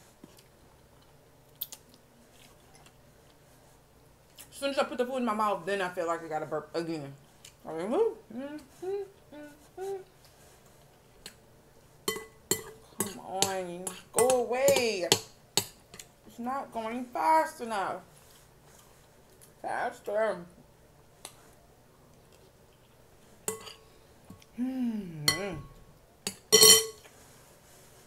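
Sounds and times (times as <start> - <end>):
woman speaking: 4.5 - 9.1, 13.1 - 15.2, 16.3 - 18.1, 19.6 - 20.5, 24.6 - 25.7
metal spoon clinking on glass bowl: 12.1 - 13.2, 26.3 - 27.0.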